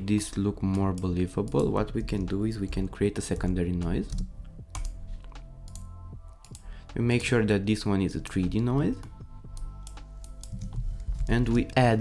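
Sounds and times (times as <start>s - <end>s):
computer keyboard typing: 3.4s - 6.7s, 9.0s - 11.7s.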